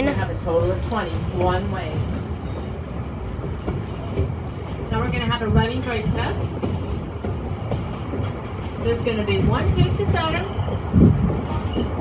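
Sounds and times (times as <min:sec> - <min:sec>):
vehicle rumbling: 0:00.0 - 0:12.0.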